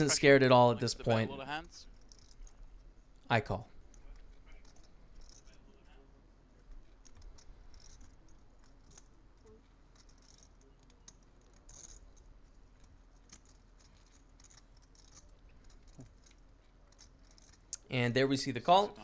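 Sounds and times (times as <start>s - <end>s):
poker chips rattling: 1.8s - 2.9s, 3.8s - 5.6s, 6.7s - 17.8s
poker chips clicking: 6.8s - 17.8s.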